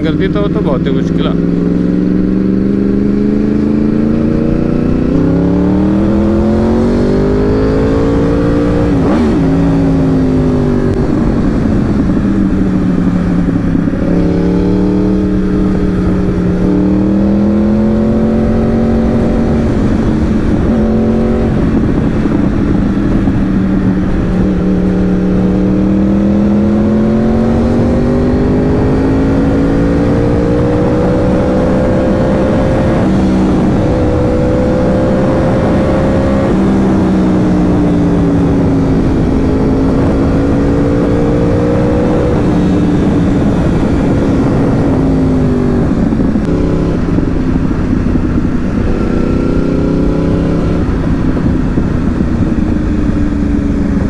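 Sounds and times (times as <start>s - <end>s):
motorcycle engine revving: 0.0s - 54.0s
wind rush on microphone: 0.8s - 54.0s.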